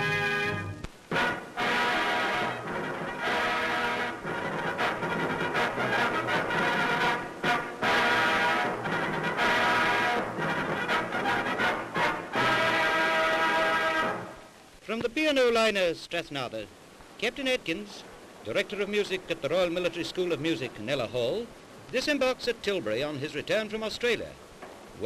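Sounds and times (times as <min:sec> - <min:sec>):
music breaking off: 0:00.0 - 0:14.3
brass fanfare on trumpets: 0:00.0 - 0:14.4.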